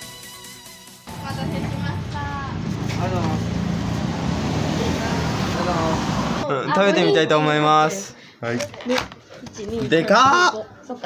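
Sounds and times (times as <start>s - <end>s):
low traffic rumble: 1.1s - 6.5s
voices: 1.1s - 7.5s.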